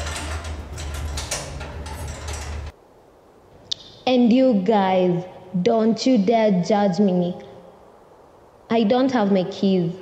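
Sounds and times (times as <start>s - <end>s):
mechanical clicking and rattling: 0.0s - 2.7s.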